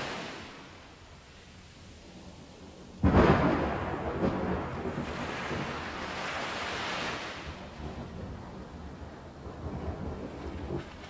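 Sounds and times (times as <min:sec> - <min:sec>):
rushing wind and surf: 0:00.0 - 0:11.0
thunder rumbling: 0:03.0 - 0:06.4, 0:07.4 - 0:11.0.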